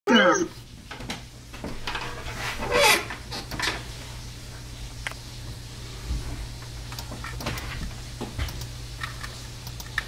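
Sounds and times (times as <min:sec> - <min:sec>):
high-pitched wavering cry: 0:00.1 - 0:00.5.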